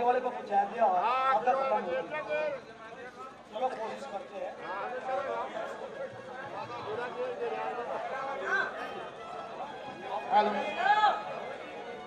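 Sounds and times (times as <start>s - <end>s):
men talking indistinctly: 0.0s - 12.0s.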